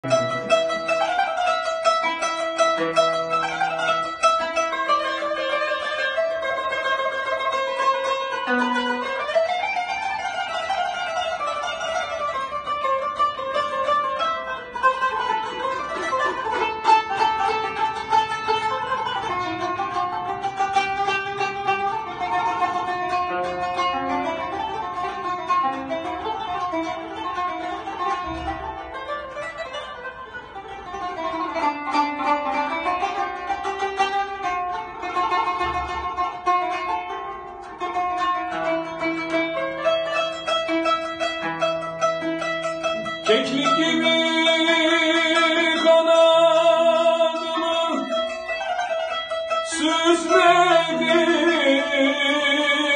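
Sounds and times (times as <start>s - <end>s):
plucked zither melody: 0.0s - 52.9s.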